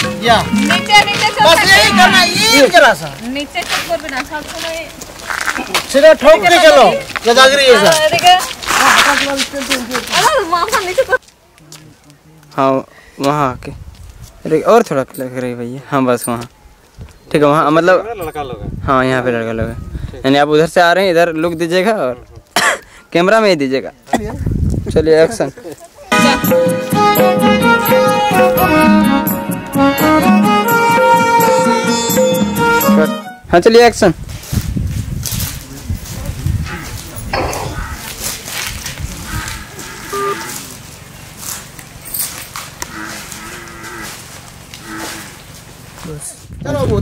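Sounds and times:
cow mooing: 39.2 - 40.7, 42.9 - 44.2, 44.8 - 45.4.

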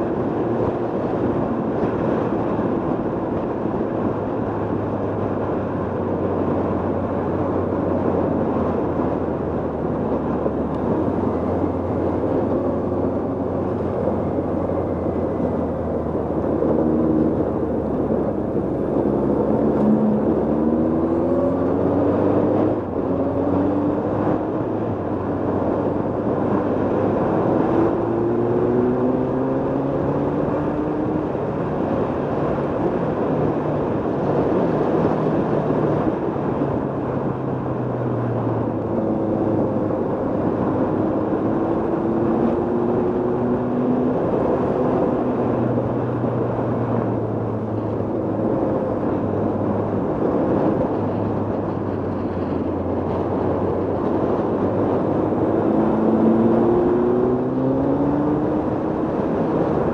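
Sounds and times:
wind and road noise: 0.0 - 59.9
motorcycle engine accelerating: 10.2 - 31.4, 38.2 - 59.9.

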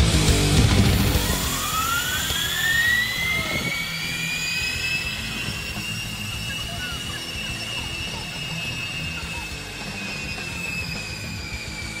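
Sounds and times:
zip-line pulleys whining on cable: 0.6 - 12.0.

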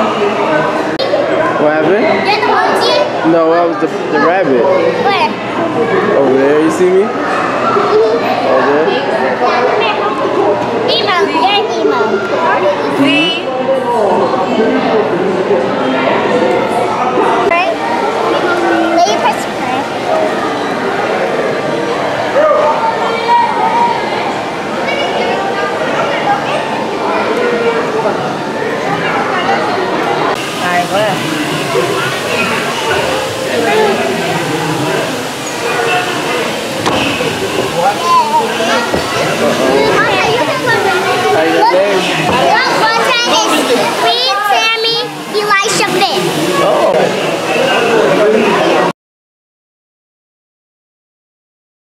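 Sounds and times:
children talking and calling out: 0.0 - 15.2, 16.0 - 30.6, 31.2 - 48.9
chatter of voices indoors: 0.0 - 48.9.

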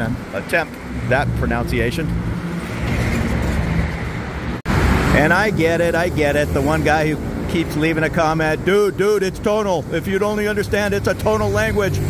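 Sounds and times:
general traffic noise: 0.0 - 12.0.

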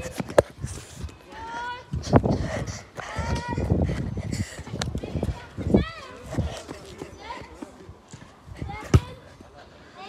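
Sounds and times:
running footsteps: 0.0 - 9.7.

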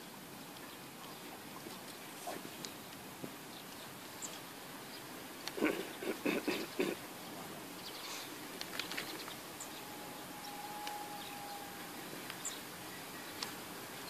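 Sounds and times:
calls: 5.5 - 14.0
thin steady tone: 9.3 - 14.0
faint clicks: 10.8 - 11.0, 13.3 - 13.6.

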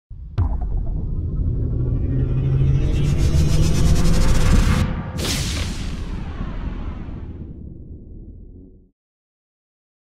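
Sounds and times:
deep rumble: 0.1 - 8.9.

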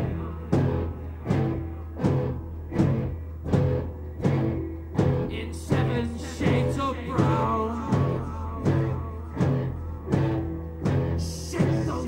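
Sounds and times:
low bass drone: 0.0 - 12.0
noise rock band playing: 0.0 - 12.0.

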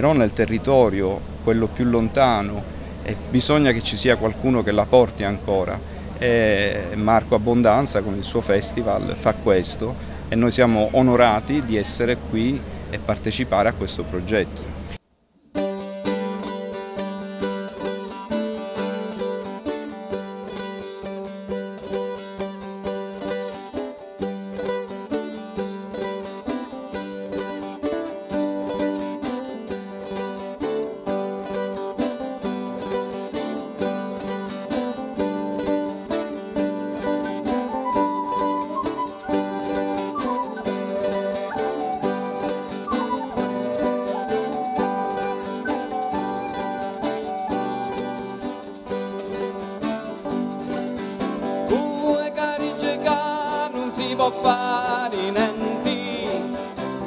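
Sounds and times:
bass: 0.0 - 15.0
strummed acoustic guitar: 15.5 - 57.0
plucked mandolin: 15.6 - 57.0
high sustained melody line: 28.2 - 50.7.

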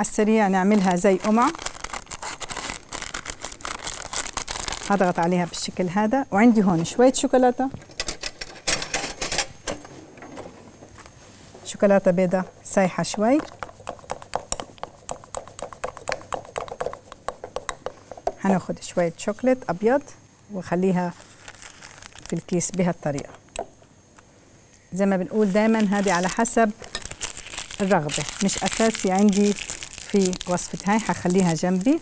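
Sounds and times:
parchment paper crinkling: 0.7 - 5.6, 21.0 - 23.0, 25.3 - 32.0.

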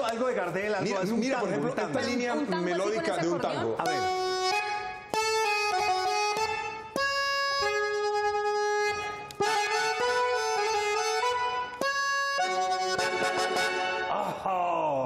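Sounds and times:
button accordion playing tango melody: 3.6 - 14.1.

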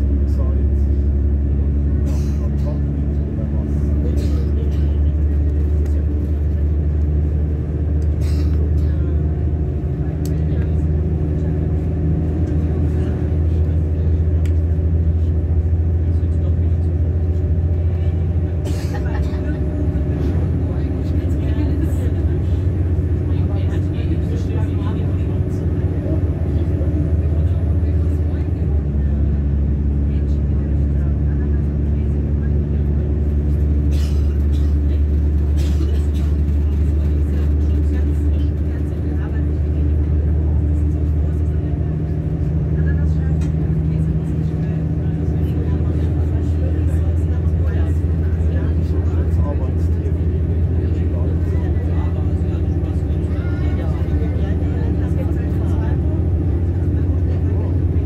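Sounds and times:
low engine drone: 0.0 - 58.0
train rumble: 0.0 - 58.0
wheels clicking on track: 31.6 - 53.2.

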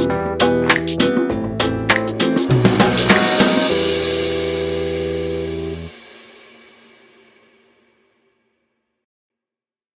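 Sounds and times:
electronic music chord: 1.2 - 6.7.

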